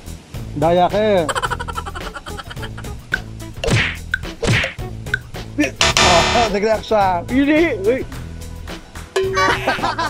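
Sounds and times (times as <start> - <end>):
background music with beat: 2.7 - 6.8
loud dense sound effect burst: 5.8 - 6.8.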